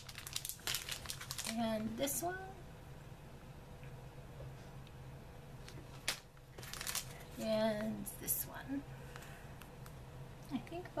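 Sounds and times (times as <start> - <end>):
plastic crinkling: 0.0 - 2.0, 5.6 - 8.0.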